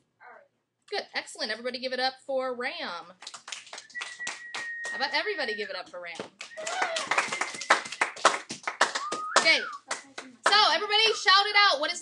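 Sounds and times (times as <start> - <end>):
people clapping unevenly: 3.2 - 10.9.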